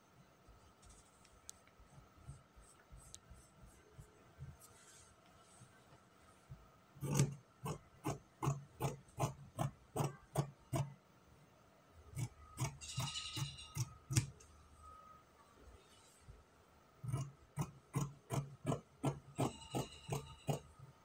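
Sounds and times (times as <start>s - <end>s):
scissors cutting fabric: 7.0s - 10.9s, 12.1s - 14.4s, 17.0s - 20.7s.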